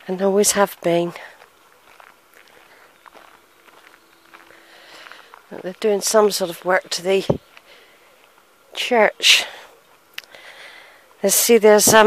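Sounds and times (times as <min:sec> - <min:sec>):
faint footsteps: 0:00.0 - 0:08.8, 0:09.4 - 0:12.0
faint steady hum: 0:00.0 - 0:12.0.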